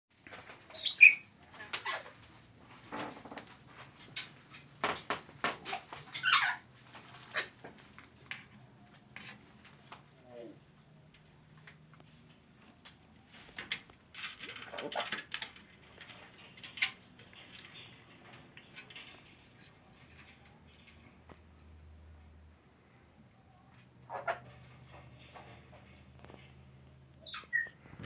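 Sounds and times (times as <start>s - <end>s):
parrot whistles and calls: 0.7s - 1.2s.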